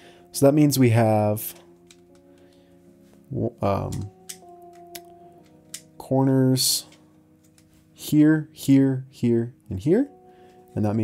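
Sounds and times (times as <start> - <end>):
quiet background music: 0.0 - 11.0
plastic puzzle clicking: 3.9 - 5.9.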